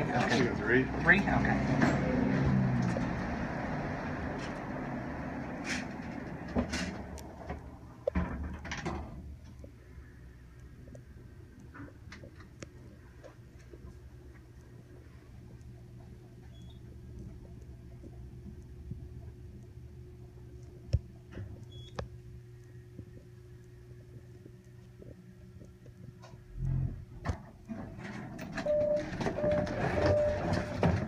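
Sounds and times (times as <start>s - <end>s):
elevator doors sliding shut: 27.8s - 31.0s.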